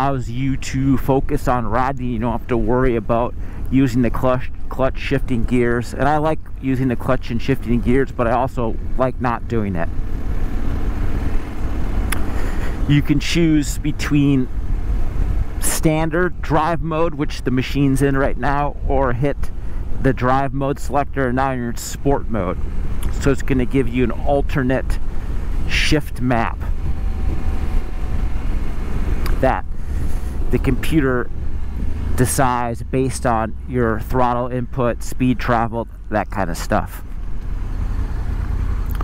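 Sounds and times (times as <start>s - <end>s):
motorcycle engine cruising: 0.0s - 39.0s
road noise: 0.0s - 39.0s
wind rumble on microphone: 26.6s - 30.5s.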